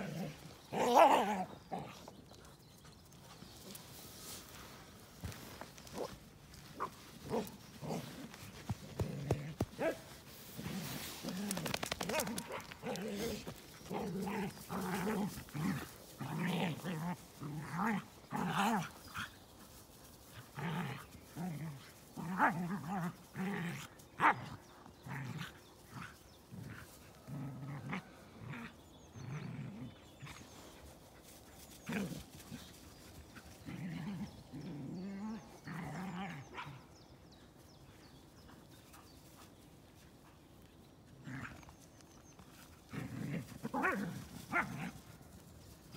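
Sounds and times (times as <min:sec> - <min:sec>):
dogs growling: 0:00.0 - 0:02.5, 0:06.8 - 0:19.4, 0:20.4 - 0:30.9, 0:31.7 - 0:37.0, 0:42.6 - 0:45.4.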